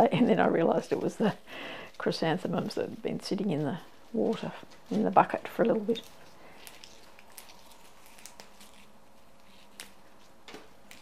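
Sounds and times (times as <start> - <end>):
leaves being stripped crackling: 0.7 - 11.0.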